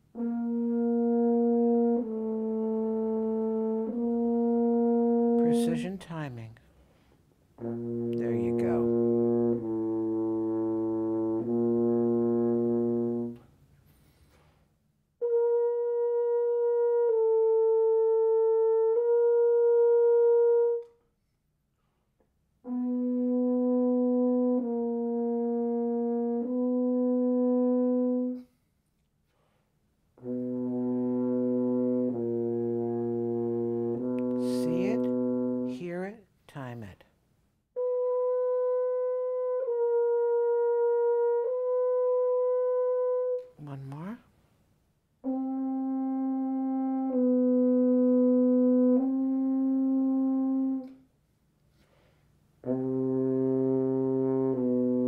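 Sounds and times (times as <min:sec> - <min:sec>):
french horn held notes: 0:00.1 - 0:06.6, 0:07.6 - 0:14.5, 0:22.6 - 0:28.6, 0:30.2 - 0:36.8, 0:45.2 - 0:51.0, 0:52.6 - 0:55.0.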